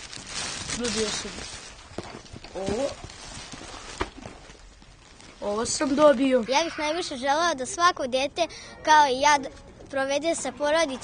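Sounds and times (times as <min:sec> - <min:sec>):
plastic bag rustling: 0:00.0 - 0:06.7
child's voice: 0:05.4 - 0:11.0.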